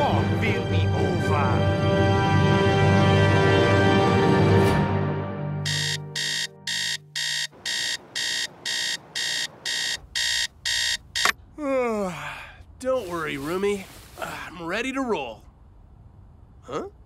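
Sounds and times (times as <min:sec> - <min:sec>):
alarm clock beeping: 0:05.6 - 0:11.4
man yawning: 0:11.5 - 0:12.6.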